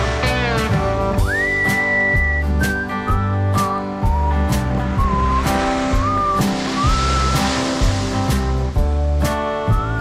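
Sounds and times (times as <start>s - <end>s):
whistled melody over beat: 0.6s - 10.0s
soft hissing swell: 5.3s - 8.6s.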